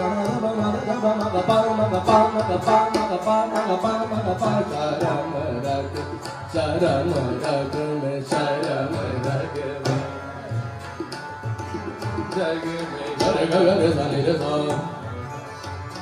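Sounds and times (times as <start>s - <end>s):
man singing: 0.0s - 10.2s, 12.2s - 15.2s
harmonium: 0.0s - 16.0s
tabla strokes: 0.0s - 16.0s
tanpura drone: 0.0s - 16.0s.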